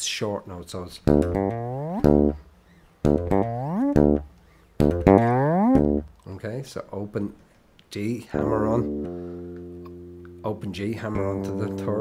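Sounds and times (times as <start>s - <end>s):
fretless electric bass playing: 1.0s - 6.2s, 8.3s - 12.0s.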